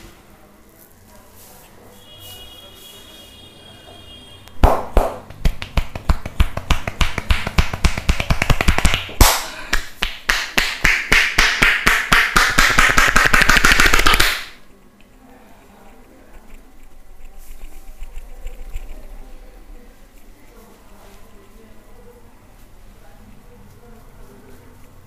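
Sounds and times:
hands slapping a head: 0:04.6 - 0:14.6.

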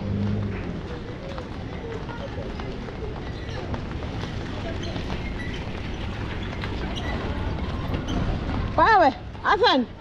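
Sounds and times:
faint voices of passers-by: 0:00.0 - 0:10.0
street background noise: 0:00.0 - 0:10.0.

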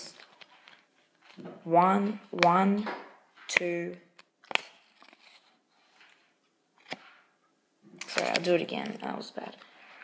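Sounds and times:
card handling rustle: 0:04.4 - 0:07.2.

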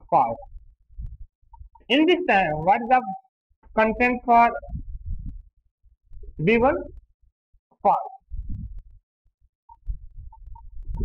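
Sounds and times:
man speaking: 0:01.9 - 0:03.2, 0:03.8 - 0:04.8, 0:06.4 - 0:07.0, 0:07.8 - 0:08.2.

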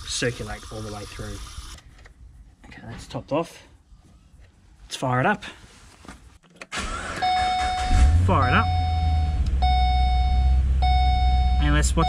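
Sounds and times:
car engine starting: 0:06.7 - 0:12.0
electronic warning tone: 0:07.2 - 0:12.0.

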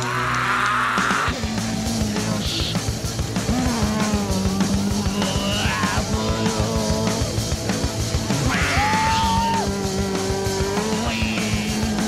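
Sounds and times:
electric guitar: 0:00.0 - 0:12.0
fast drumming: 0:00.0 - 0:12.0.

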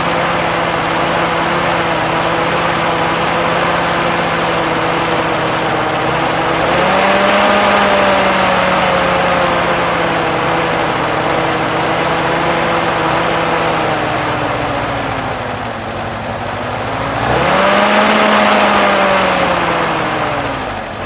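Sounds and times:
car engine idling and revving: 0:00.0 - 0:21.0.

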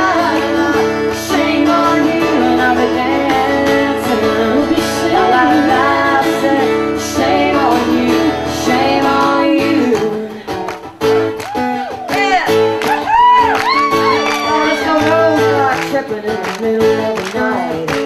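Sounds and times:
women singing: 0:00.0 - 0:10.6, 0:13.9 - 0:18.0
guitar accompaniment: 0:00.0 - 0:18.0.

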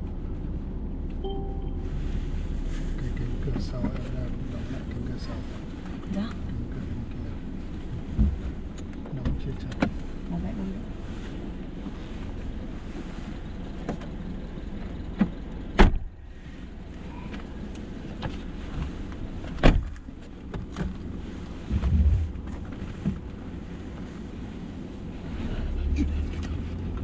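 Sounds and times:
car engine idling: 0:01.0 - 0:27.0.

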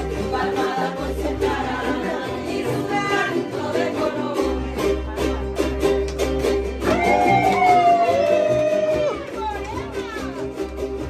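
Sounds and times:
voices singing along: 0:00.0 - 0:05.5
guitars strumming: 0:00.0 - 0:11.0.

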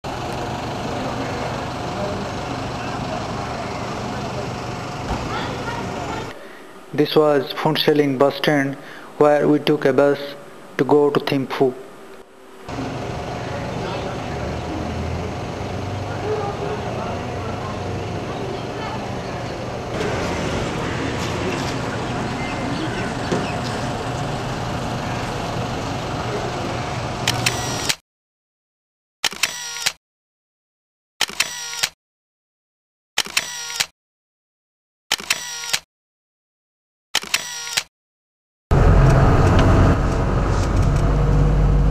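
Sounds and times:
vehicle engine running: 0:00.0 - 0:08.0, 0:12.2 - 0:27.8, 0:38.7 - 0:41.9
murmur of voices: 0:00.4 - 0:07.0, 0:12.7 - 0:27.2
camera shutter click and whirr: 0:27.2 - 0:28.0, 0:29.2 - 0:30.0, 0:31.2 - 0:32.0, 0:33.2 - 0:33.9, 0:35.1 - 0:35.9, 0:37.2 - 0:37.9
sharp clicks: 0:29.2 - 0:30.0, 0:31.2 - 0:32.0, 0:33.2 - 0:33.9, 0:35.1 - 0:35.8, 0:37.2 - 0:37.9.

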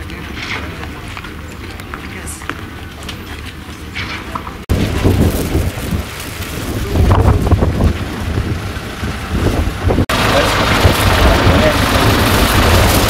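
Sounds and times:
people's voices: 0:00.0 - 0:04.6, 0:10.1 - 0:12.4
outdoor noise: 0:00.0 - 0:13.0
car driving over dirt: 0:04.0 - 0:13.0
wind buffeting microphone: 0:04.6 - 0:13.0.

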